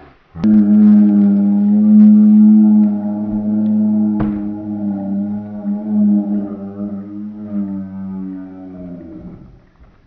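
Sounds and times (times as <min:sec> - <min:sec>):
low pitched drone: 0:00.3 - 0:09.7.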